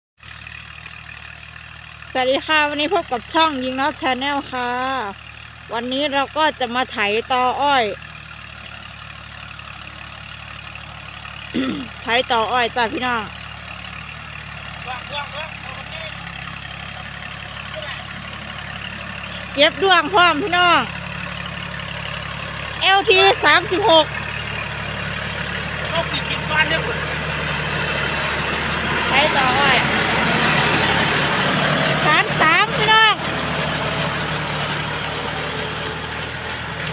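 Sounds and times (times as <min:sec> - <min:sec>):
diesel tractor engine droning: 0:00.2 - 0:36.9
woman speaking: 0:02.1 - 0:08.0, 0:11.6 - 0:13.4, 0:19.4 - 0:20.9, 0:22.8 - 0:24.1, 0:29.1 - 0:29.9, 0:31.9 - 0:33.3.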